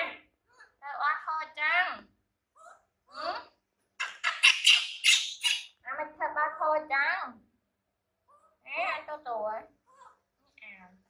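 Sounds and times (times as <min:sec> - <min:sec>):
baby macaque screeching: 0:04.0 - 0:05.8
woman's voice: 0:10.6 - 0:11.0.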